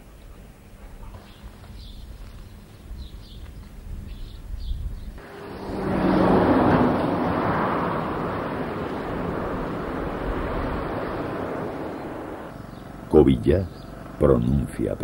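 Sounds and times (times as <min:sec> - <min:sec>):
road traffic with lorries: 0:05.2 - 0:15.0.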